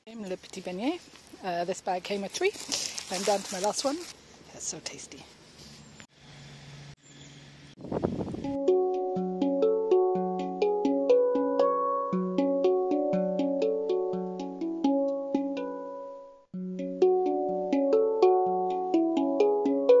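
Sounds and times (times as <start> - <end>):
handpan melody: 8.4 - 20.0.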